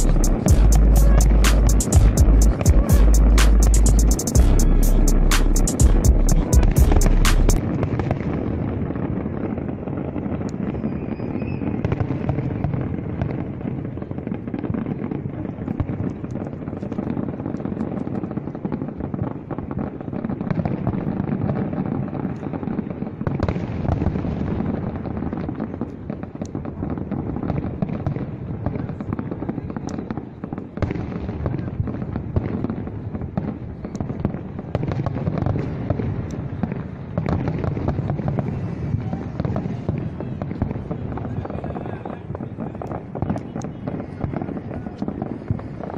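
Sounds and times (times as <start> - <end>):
loud evenly spaced pulses: 0.0 - 7.8
fireworks bursts rumbling: 0.0 - 45.9
fireworks crackles and pops: 0.0 - 45.9.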